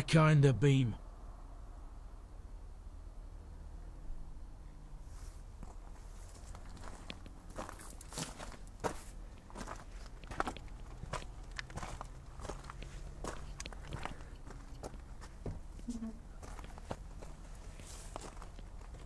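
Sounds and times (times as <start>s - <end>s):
footsteps on grass: 5.1s - 19.0s.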